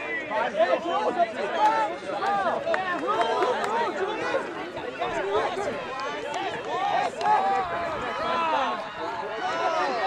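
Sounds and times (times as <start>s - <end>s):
voices shouting and calling out: 0.0s - 10.0s.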